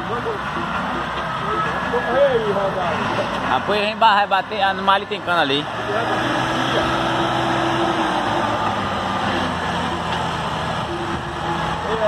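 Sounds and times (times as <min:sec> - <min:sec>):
faint voices talking: 0:00.0 - 0:12.0
vehicle engine running: 0:00.0 - 0:12.0.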